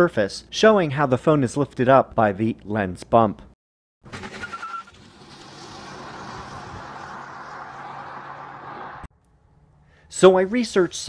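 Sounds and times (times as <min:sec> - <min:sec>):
vehicle rushing: 0:04.2 - 0:09.1.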